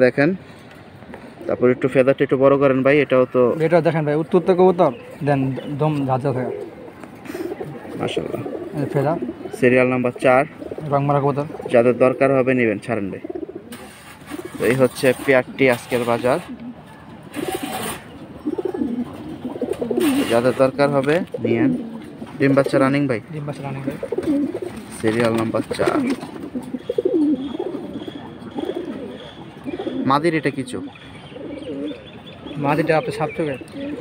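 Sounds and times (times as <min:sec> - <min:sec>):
pigeons cooing: 0:00.9 - 0:34.0.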